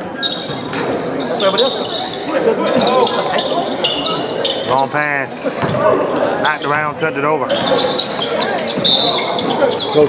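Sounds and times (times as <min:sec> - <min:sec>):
sneaker squeaks: 0:00.0 - 0:04.9, 0:06.4 - 0:10.0.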